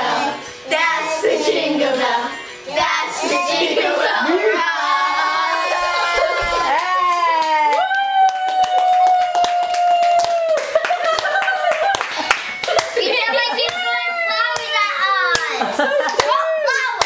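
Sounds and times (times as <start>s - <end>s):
children singing: 0.0s - 6.8s
hand claps: 6.4s - 17.0s.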